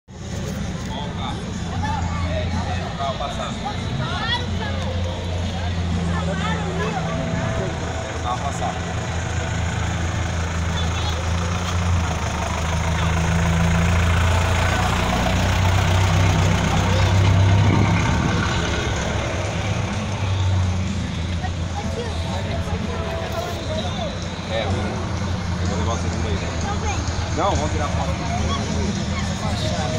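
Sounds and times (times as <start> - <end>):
crowd chatter: 0.1 - 29.9
engine idling: 0.1 - 29.9.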